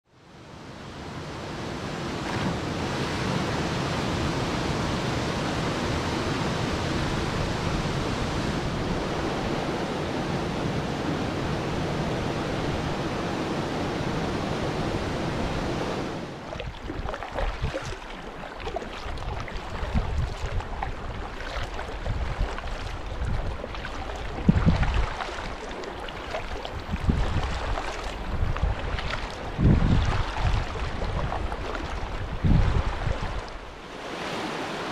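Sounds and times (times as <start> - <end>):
wind rumbling on microphone: 1.0 - 34.5
paddle strokes splashing water: 16.3 - 34.9.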